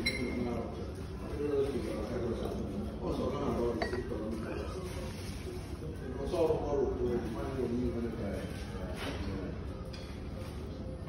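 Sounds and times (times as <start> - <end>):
tableware clinking: 3.6 - 4.4.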